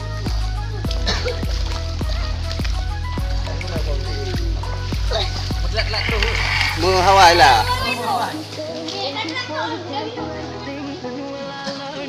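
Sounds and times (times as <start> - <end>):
background music: 0.0 - 12.0
children talking and calling out: 3.8 - 12.0.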